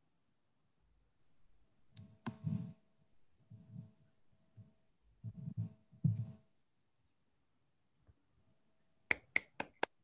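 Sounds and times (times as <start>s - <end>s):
hands clapping: 9.1s - 10.0s.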